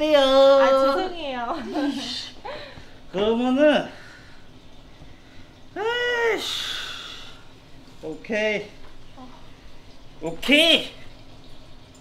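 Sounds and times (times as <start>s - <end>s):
breathy hiss: 3.8s - 7.8s.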